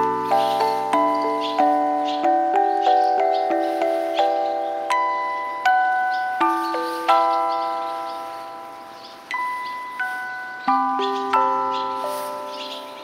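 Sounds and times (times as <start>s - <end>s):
bell-like chime chords: 0.0s - 13.0s.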